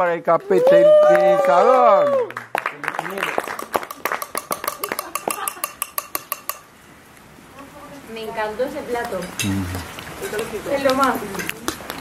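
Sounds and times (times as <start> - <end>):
group clapping: 0.4 - 5.4
voices: 7.6 - 11.6.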